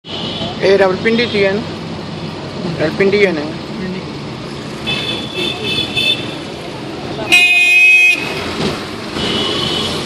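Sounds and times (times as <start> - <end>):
street traffic hum: 0.0 - 10.0
vehicle horn blast: 7.3 - 8.3.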